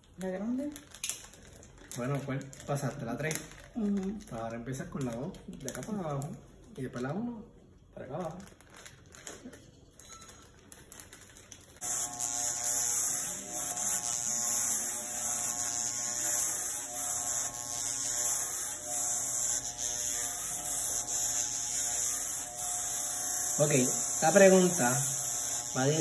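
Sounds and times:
electric hair clippers buzzing: 11.8s - 26.0s.

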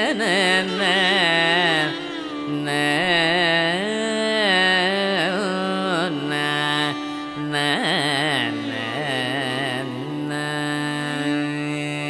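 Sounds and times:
man singing ornamented notes: 0.0s - 12.0s
violin: 0.0s - 12.0s.

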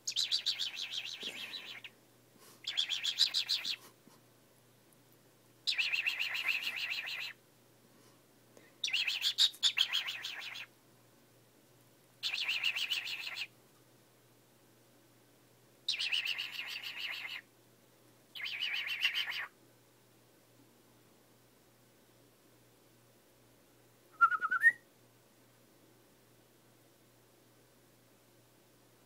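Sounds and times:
cockatiel harsh pulsing calls: 0.1s - 1.9s, 2.6s - 3.8s, 5.7s - 7.4s, 18.4s - 19.5s.

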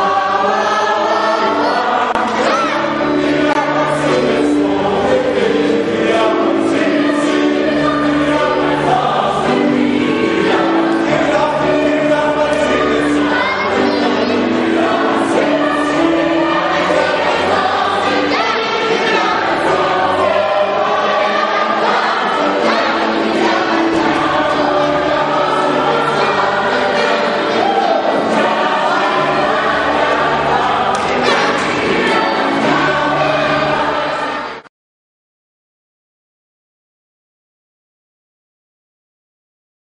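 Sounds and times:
choir singing: 0.0s - 34.7s.

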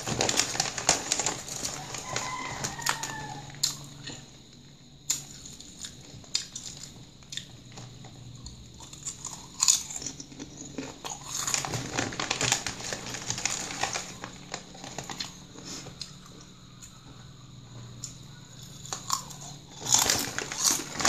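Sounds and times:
chip bag crinkling: 0.0s - 4.2s, 5.1s - 16.5s, 18.5s - 21.0s
potato chips crunched and chewed: 0.0s - 4.3s, 5.0s - 17.2s, 17.9s - 21.0s.

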